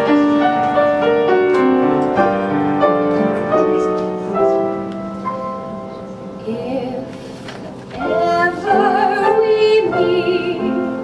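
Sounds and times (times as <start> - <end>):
piano ballad: 0.0 - 11.0.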